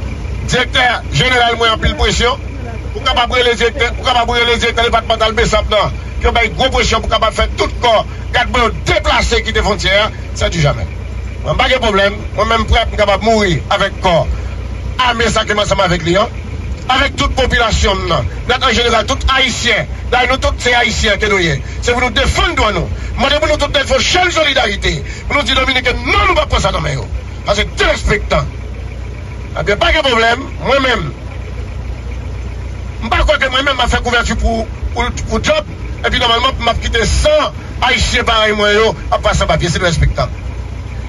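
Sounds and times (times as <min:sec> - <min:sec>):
steady low rumble: 0:00.0 - 0:41.0
man speaking: 0:00.4 - 0:28.6, 0:29.5 - 0:31.2, 0:33.0 - 0:40.4
man talking: 0:00.4 - 0:28.6, 0:29.5 - 0:31.2, 0:33.0 - 0:40.4.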